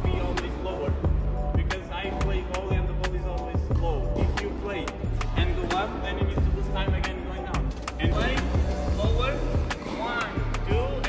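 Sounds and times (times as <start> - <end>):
background music with beat: 0.0 - 11.0
racket hitting tennis balls: 3.7 - 5.7.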